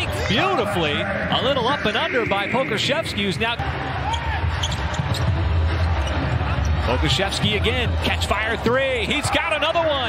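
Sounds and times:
low arena hum: 0.0 - 9.8.

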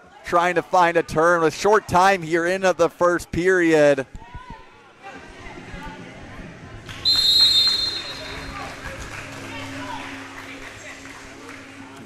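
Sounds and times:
crowd chatter: 0.0 - 12.0
referee's whistle blast: 7.0 - 8.6.

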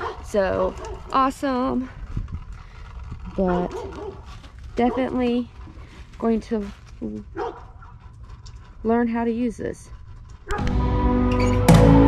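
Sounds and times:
dog barking: 0.0 - 1.1, 3.5 - 5.2, 7.3 - 8.0.

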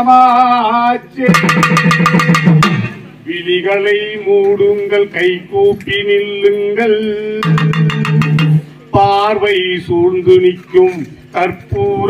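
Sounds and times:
drum roll with sticks: 1.3 - 3.1, 7.4 - 8.7
low pitched ring: 7.4 - 8.8.

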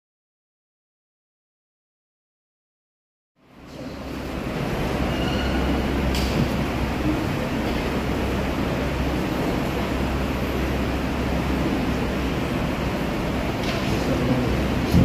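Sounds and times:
sound system hum: 3.4 - 15.0.

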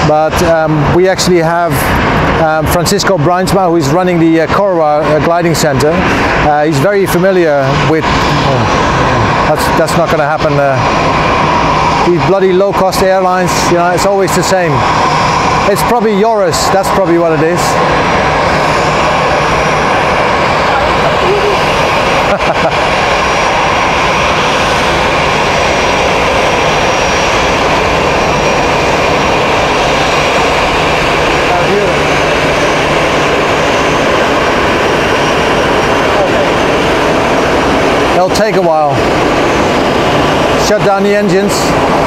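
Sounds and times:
jet engines running loudly: 0.0 - 42.0.

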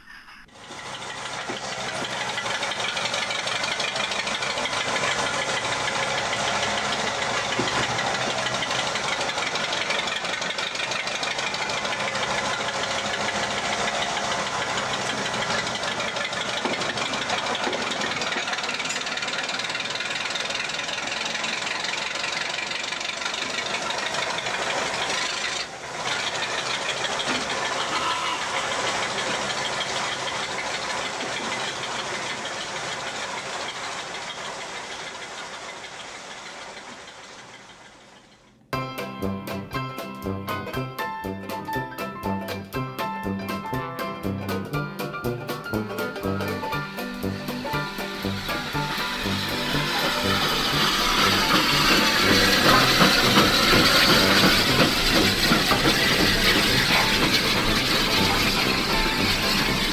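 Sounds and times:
diesel locomotive engine running: 0.0 - 59.9.

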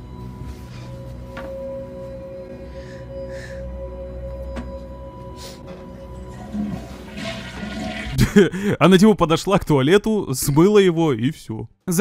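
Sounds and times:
low music drone: 0.0 - 8.4
toilet flushing: 6.3 - 8.2.

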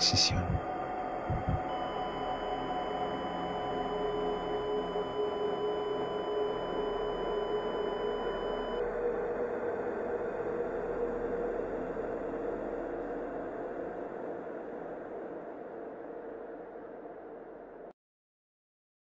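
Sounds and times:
thin high electronic tone: 0.0 - 8.8
dark ambient drone: 0.0 - 17.9.

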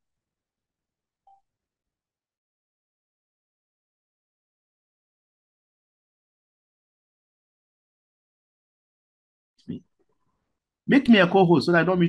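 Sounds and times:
faint electronic beep: 1.2 - 1.5.

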